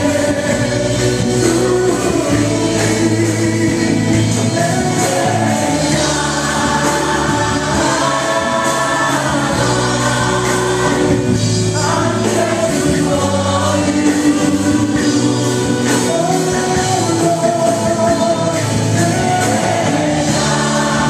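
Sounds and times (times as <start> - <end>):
band with keyboard and drums: 0.0 - 21.0
group singing gospel song: 0.0 - 21.0.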